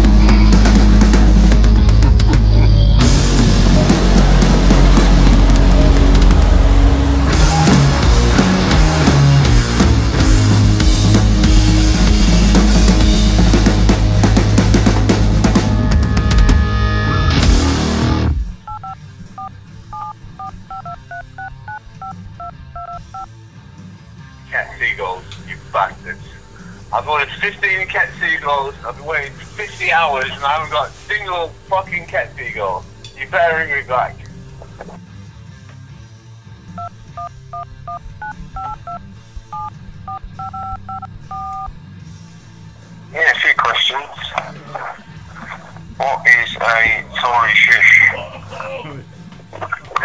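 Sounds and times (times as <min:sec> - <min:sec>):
people laughing: 0:00.1 - 0:03.0
voices: 0:24.5 - 0:35.0, 0:43.1 - 0:50.0
telephone keypad beeps: 0:36.8 - 0:41.7.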